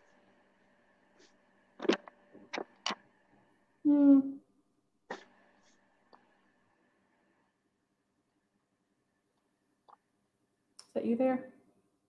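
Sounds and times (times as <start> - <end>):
faint electrical hum: 0.0 - 12.0
microphone handling clicks: 1.8 - 3.0.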